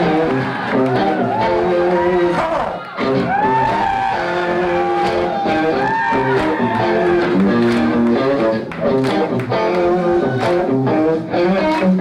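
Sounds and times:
electric guitar bending notes: 0.0 - 12.0
live band music: 0.0 - 12.0.

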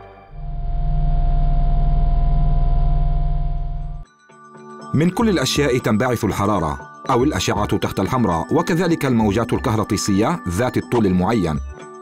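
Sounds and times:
steady tone: 0.3 - 4.0
low electrical hum with buzz: 0.4 - 4.0.

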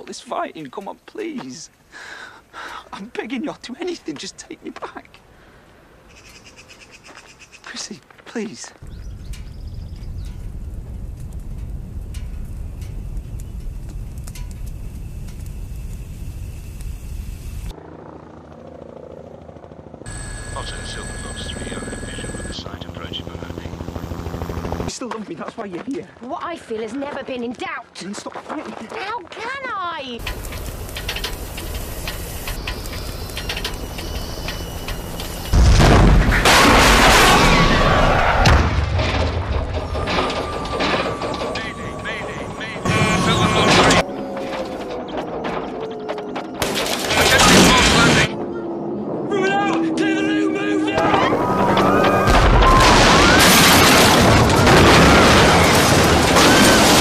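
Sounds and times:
large fire crackling: 7.6 - 17.8, 20.1 - 48.3, 51.0 - 57.0
helicopter rotor beating: 8.8 - 25.0, 30.2 - 36.6, 39.4 - 52.8
thin high tone dropping in pitch: 20.1 - 22.6
debris crashing and clattering: 35.5 - 48.3, 51.0 - 57.0.

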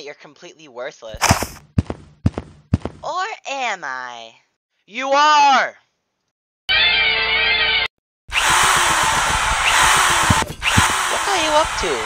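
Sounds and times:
power drill running: 8.3 - 12.0.

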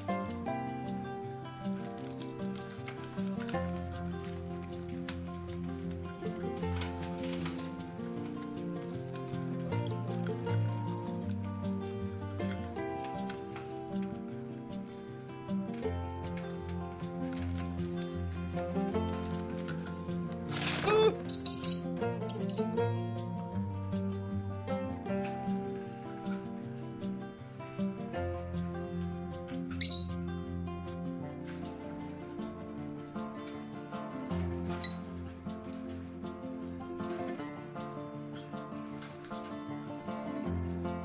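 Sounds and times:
background music held notes: 0.0 - 41.0
paper crackling and crinkling: 1.7 - 11.8, 17.2 - 21.6
lovebird high chirps: 20.8 - 22.7, 29.5 - 30.2.

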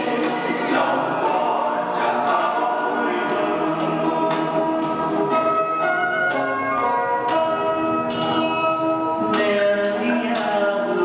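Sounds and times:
church choir singing a hymn: 0.0 - 4.7.

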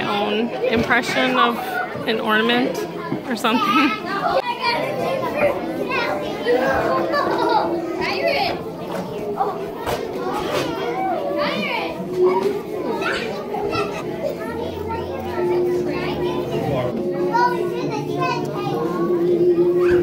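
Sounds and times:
adults talking: 0.0 - 20.0
children chattering: 0.0 - 20.0.

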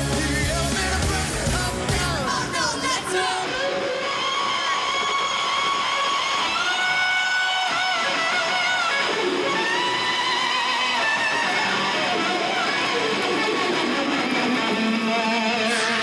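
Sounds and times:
electric guitar solo: 0.0 - 16.0.

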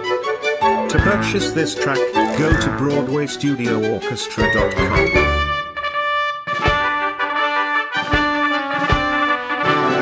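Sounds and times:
brass orchestra chords: 0.7 - 10.0.

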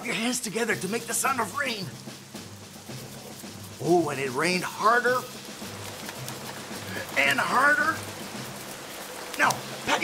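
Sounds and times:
palms rubbing together: 0.0 - 10.0.

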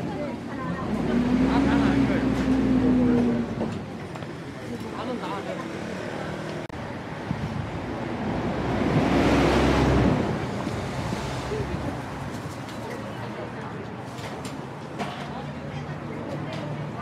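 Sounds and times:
bus passing by: 0.0 - 13.5
market voices: 0.0 - 17.0.

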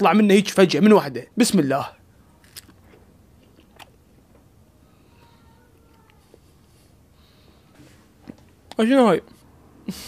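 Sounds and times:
person chewing fruit: 2.4 - 4.0.

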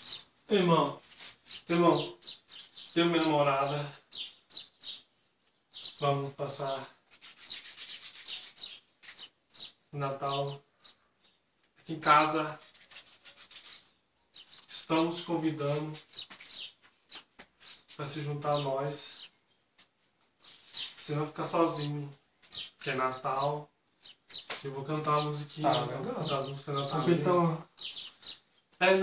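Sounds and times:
small bird chirping: 0.0 - 29.0.

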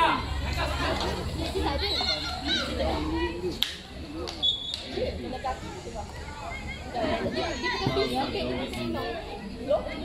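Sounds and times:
high-pitched voices chattering: 0.0 - 10.0.

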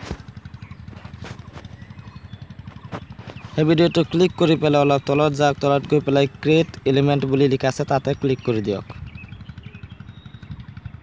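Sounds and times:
low pulsing rumble: 0.0 - 11.0.

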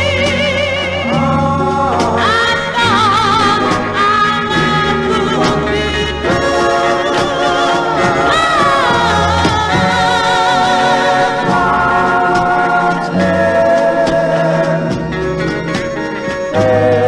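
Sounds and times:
bass line: 0.0 - 17.0
soul music with sung vocals: 0.0 - 17.0.

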